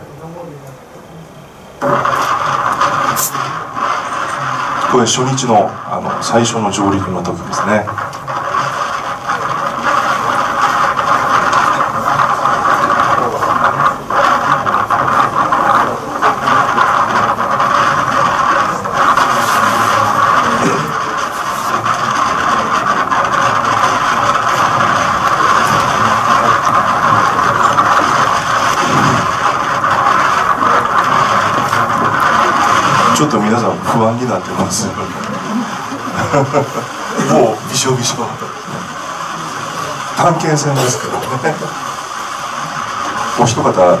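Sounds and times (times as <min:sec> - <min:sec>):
outboard motors running: 0:00.0 - 0:44.0
choppy water: 0:01.4 - 0:44.0.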